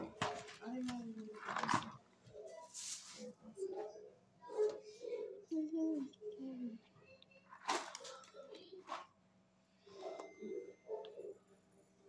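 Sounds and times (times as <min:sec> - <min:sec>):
faint voice sounds: 0:01.7 - 0:09.2.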